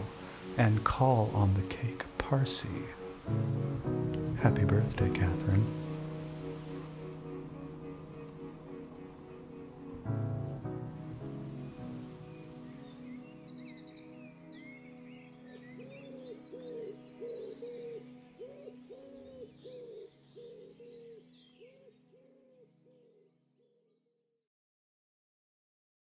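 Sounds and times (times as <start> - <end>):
birds chirping trills: 0.0 - 23.3
held drone chords: 2.3 - 13.7.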